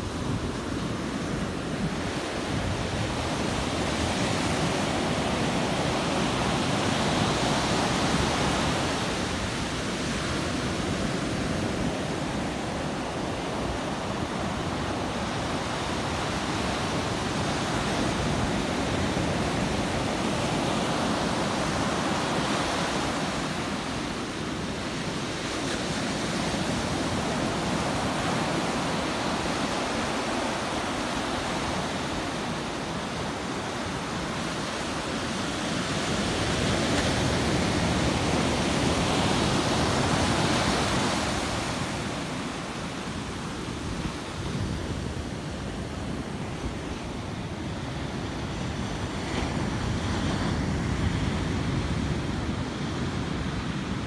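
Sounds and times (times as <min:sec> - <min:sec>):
ocean surf breaking on beach: 0:00.0 - 0:54.0.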